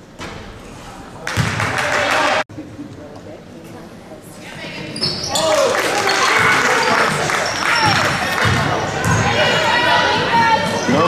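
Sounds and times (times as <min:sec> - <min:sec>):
players and spectators shouting: 0:05.2 - 0:11.0.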